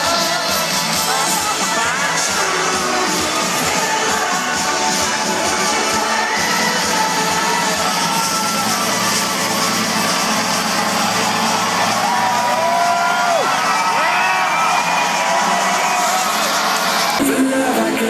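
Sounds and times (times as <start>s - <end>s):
crowd cheering and whooping: 0.0s - 18.0s
electronic dance music: 0.0s - 18.0s.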